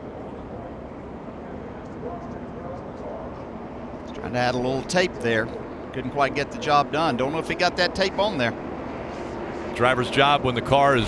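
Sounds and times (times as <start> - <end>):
faint distant voices: 0.0 - 7.1
race track background noise: 0.0 - 11.0.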